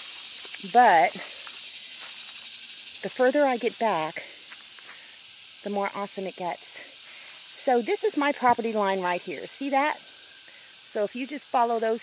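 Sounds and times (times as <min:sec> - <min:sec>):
insect chorus drone: 0:00.0 - 0:12.0.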